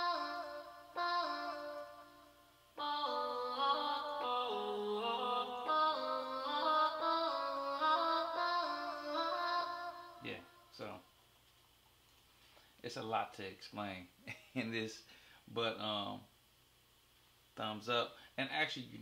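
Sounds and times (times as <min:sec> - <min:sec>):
synthesized vocal chord: 0:00.0 - 0:10.8.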